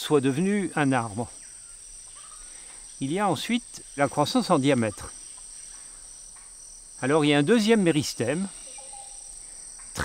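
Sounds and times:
chorus of insects: 0:00.0 - 0:10.0.

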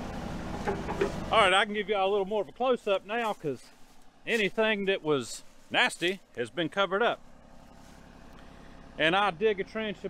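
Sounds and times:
faint diesel engine idling: 0:00.0 - 0:10.0.

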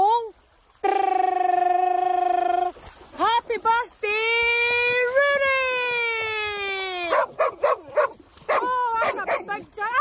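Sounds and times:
dog yipping: 0:07.1 - 0:09.5.

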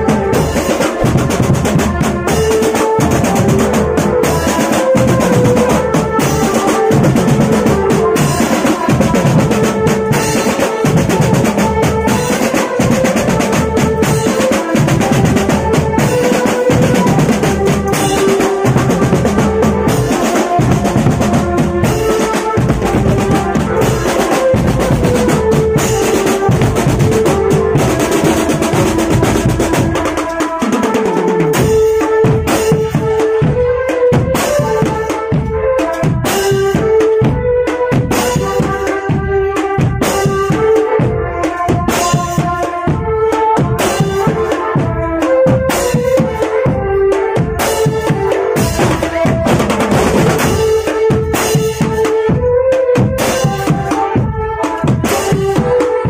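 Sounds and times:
bass and snare drums beating: 0:00.0 - 0:56.0
pitched melody: 0:00.0 - 0:56.0.

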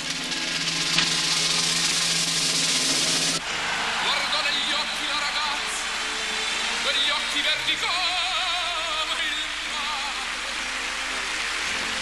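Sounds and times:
timpani roll: 0:00.0 - 0:03.4.

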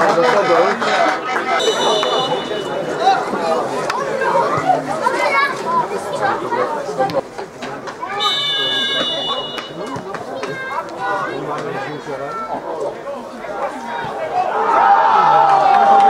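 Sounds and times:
spectators chattering: 0:00.0 - 0:16.0
high shrill whistle: 0:01.6 - 0:03.0.

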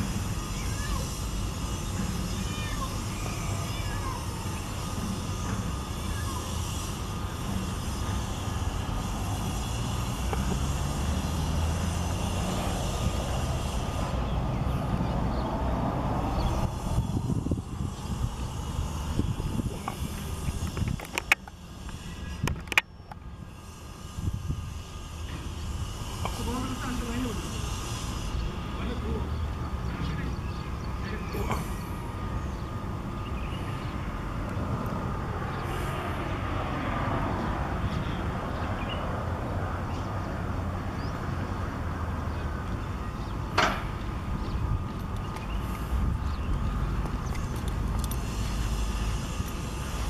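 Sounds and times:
distant voices: 0:00.0 - 0:50.0.

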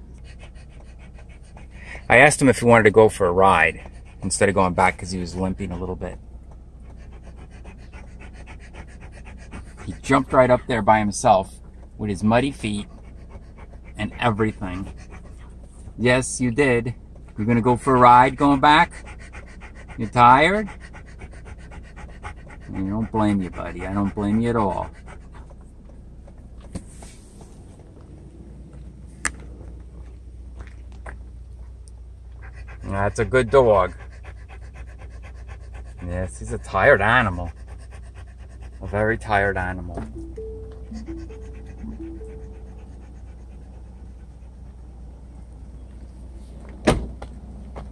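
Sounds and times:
dog panting rapidly: 0:00.0 - 0:16.4, 0:17.3 - 0:25.8, 0:32.3 - 0:45.4
low steady hum: 0:39.9 - 0:46.1.

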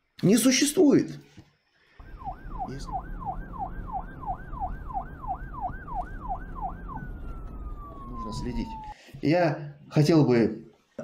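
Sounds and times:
siren wailing: 0:02.0 - 0:09.0.

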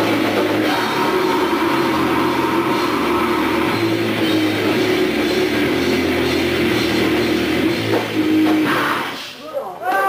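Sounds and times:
distorted guitar and bass: 0:00.0 - 0:09.2.

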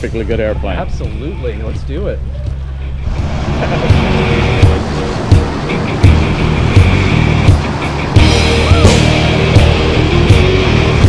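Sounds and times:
song with steady drum beat: 0:03.6 - 0:11.0.

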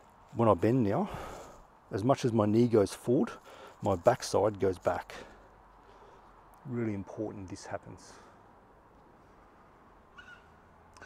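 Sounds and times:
faint short bird calls: 0:10.1 - 0:11.0.

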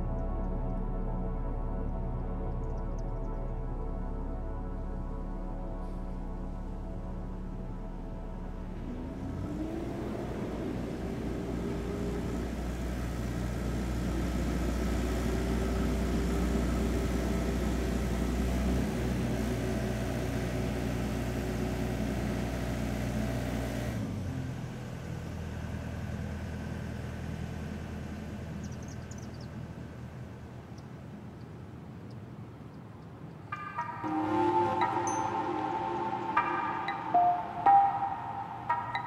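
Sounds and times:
low hum: 0:00.0 - 0:23.4, 0:33.5 - 0:39.0
engine running: 0:05.6 - 0:30.7.

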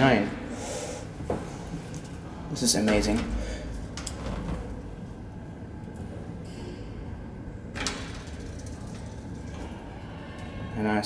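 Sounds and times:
lift car rumble and hum: 0:01.1 - 0:10.8.

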